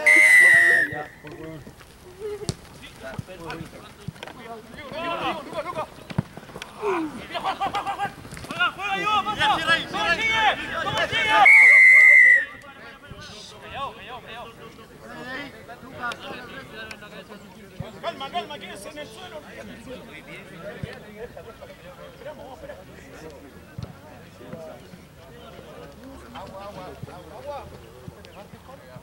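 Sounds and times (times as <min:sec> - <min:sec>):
referee's whistle blasts: 0:00.0 - 0:01.2, 0:11.3 - 0:12.6
players shouting: 0:00.0 - 0:28.8.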